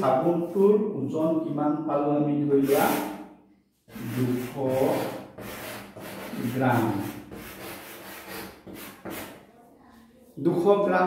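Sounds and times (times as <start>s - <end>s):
chalk writing on a blackboard: 2.6s - 3.2s, 3.8s - 9.5s.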